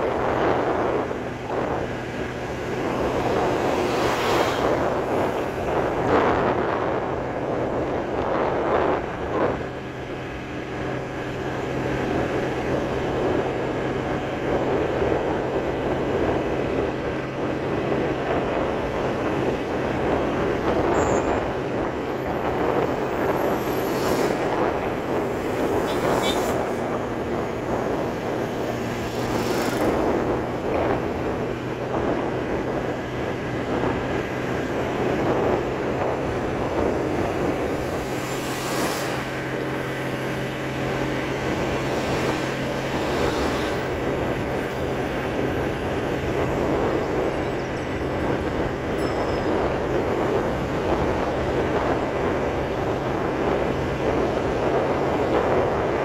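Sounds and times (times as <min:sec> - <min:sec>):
passing traffic: 0:00.0 - 0:56.0
road and engine noise: 0:00.0 - 0:56.0.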